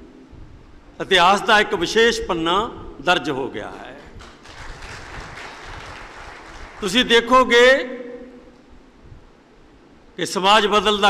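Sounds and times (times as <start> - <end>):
audience applause: 4.2 - 7.0.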